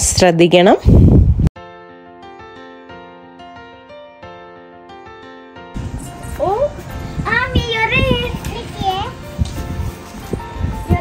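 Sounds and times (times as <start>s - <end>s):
background music: 1.6s - 11.0s
child speaking: 6.4s - 9.2s.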